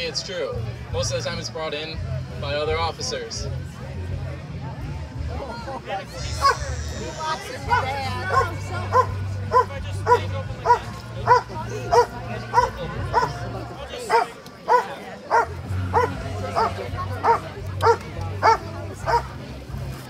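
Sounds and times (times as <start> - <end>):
dog barking: 6.4 - 6.6, 7.7 - 13.4, 14.1 - 19.3.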